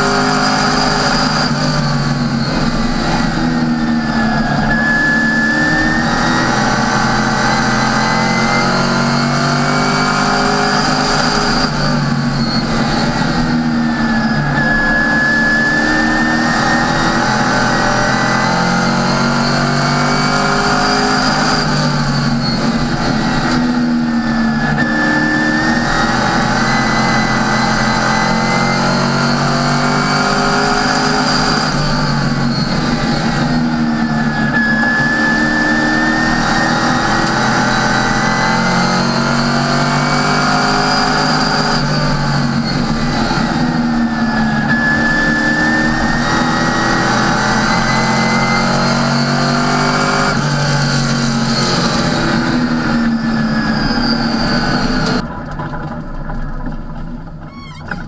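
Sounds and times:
race car engine from cockpit: 0:00.0 - 0:58.0.

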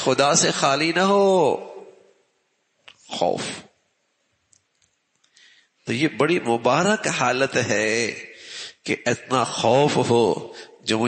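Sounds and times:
man speaking: 0:00.0 - 0:02.0, 0:03.0 - 0:03.7, 0:05.9 - 0:11.0.

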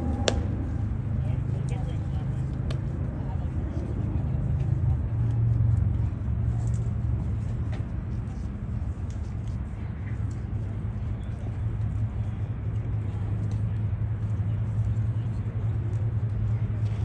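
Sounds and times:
faint distant voices: 0:00.0 - 0:17.0
steady low rumble: 0:00.0 - 0:17.0.

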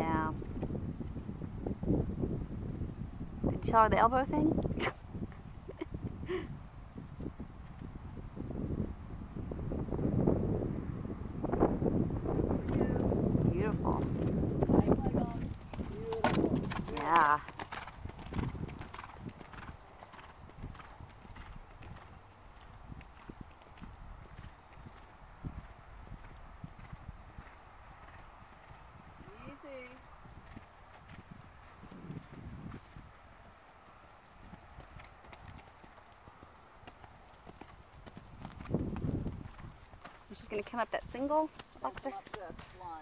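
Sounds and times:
horse hoofbeats on sand: 0:12.6 - 0:28.8, 0:34.4 - 0:43.0.

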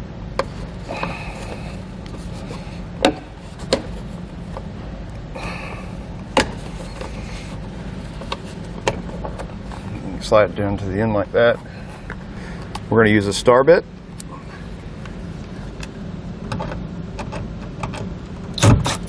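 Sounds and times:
steady low hum: 0:00.0 - 0:19.0
plastic rubbing: 0:00.4 - 0:04.8, 0:06.2 - 0:10.0.

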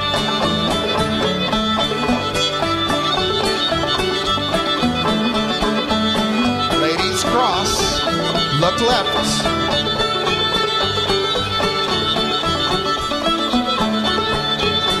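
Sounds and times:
fiddle: 0:00.0 - 0:15.0
string band playing dance tune: 0:00.0 - 0:15.0.

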